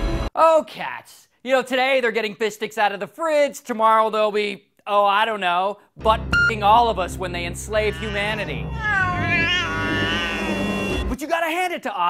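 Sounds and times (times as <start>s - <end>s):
cat meowing: 7.8s - 11.0s.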